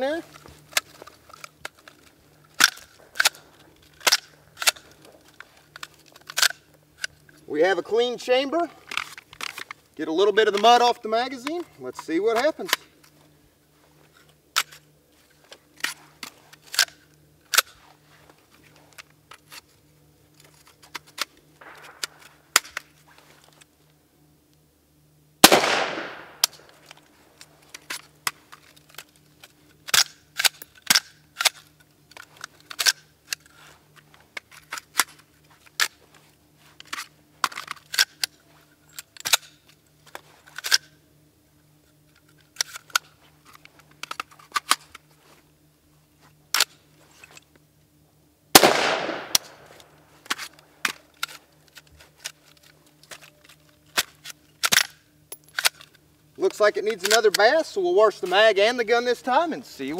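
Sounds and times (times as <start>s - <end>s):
metallic clicks of rifle handling: 0.1s - 7.4s, 8.8s - 13.3s, 14.1s - 17.8s, 18.5s - 23.7s, 25.4s - 36.0s, 36.7s - 41.0s, 41.8s - 45.2s, 46.5s - 47.6s, 48.6s - 57.6s
rifle shots echoing: 21.6s - 22.3s, 25.4s - 26.8s, 48.6s - 50.0s.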